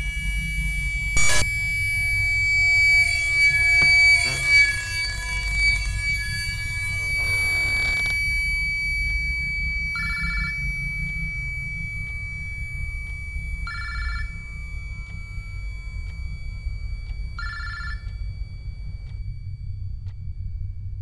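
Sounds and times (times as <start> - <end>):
steady low rumble: 0.0 - 21.0
telephone ringing: 13.6 - 14.6, 17.4 - 18.1.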